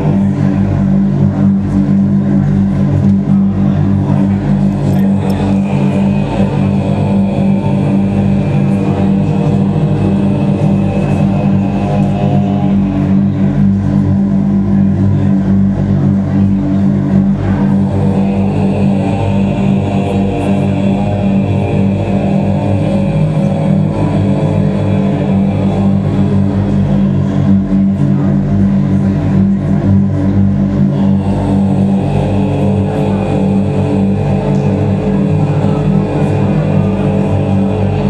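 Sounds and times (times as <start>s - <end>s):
distorted electric guitar drone: 0.0s - 38.0s.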